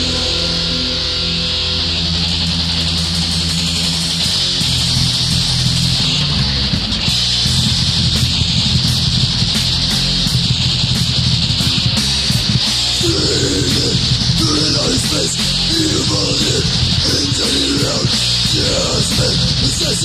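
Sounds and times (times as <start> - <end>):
distorted electric guitars riffing: 0.0 - 20.0
heavy metal band playing: 0.0 - 20.0.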